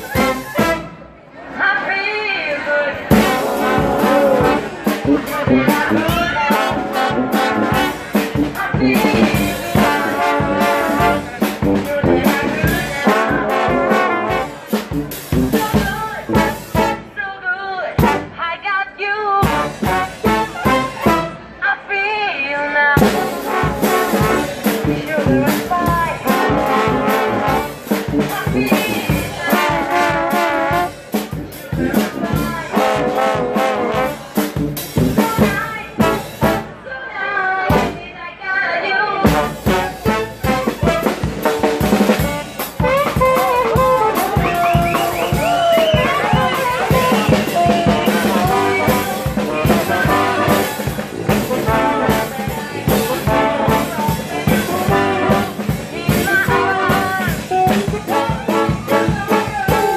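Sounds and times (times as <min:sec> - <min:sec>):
drums keeping a beat: 0:00.0 - 0:01.0, 0:03.0 - 0:17.2, 0:17.9 - 0:18.4, 0:19.4 - 0:21.6, 0:23.0 - 0:36.8, 0:37.6 - 0:38.1, 0:39.2 - 0:59.9
brass band playing funk: 0:00.0 - 0:02.0, 0:02.6 - 0:21.8, 0:22.7 - 0:38.2, 0:38.8 - 0:59.9.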